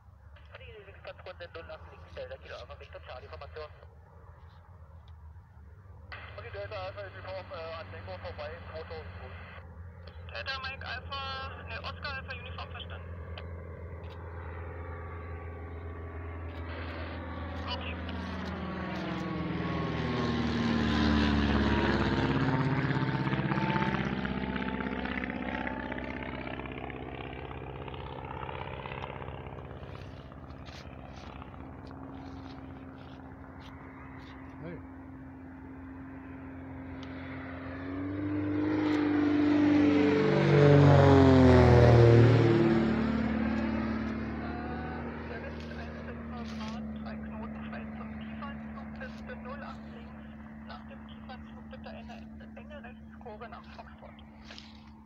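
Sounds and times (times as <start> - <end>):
propeller aircraft flying overhead: 0.0 - 55.0.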